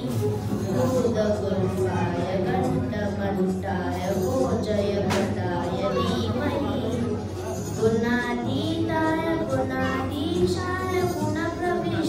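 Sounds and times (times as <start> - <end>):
boy singing into microphone: 0.8 - 12.0.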